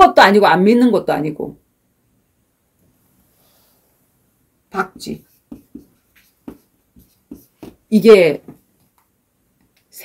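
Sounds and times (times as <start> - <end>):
chalk writing on chalkboard: 4.8 - 7.9.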